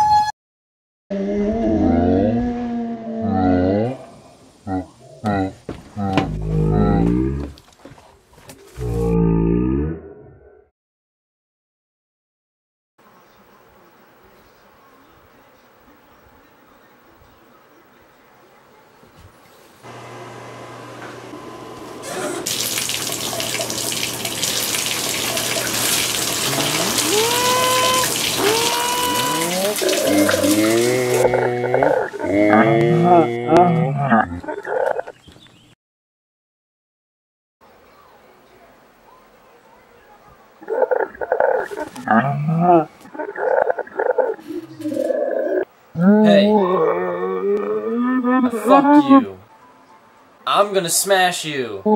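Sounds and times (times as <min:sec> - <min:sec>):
water running from a tap: 0:22.4 - 0:31.3
man roaring and growling: 0:26.5 - 0:34.6, 0:45.3 - 0:49.3.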